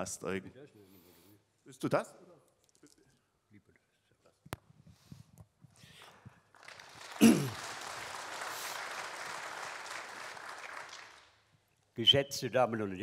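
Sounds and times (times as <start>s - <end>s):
audience applause: 6.5s - 11.4s.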